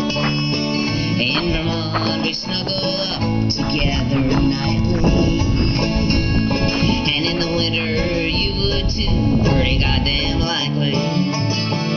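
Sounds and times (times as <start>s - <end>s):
acoustic guitar country music: 0.0s - 11.9s
low rumble: 1.0s - 10.5s.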